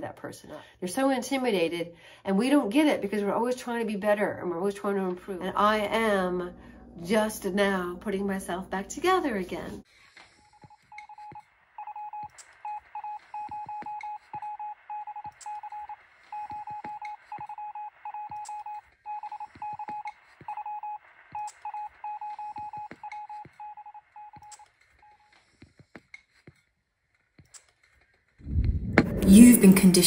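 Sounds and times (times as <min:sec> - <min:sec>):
morse code beeping: 0:10.6 - 0:25.2.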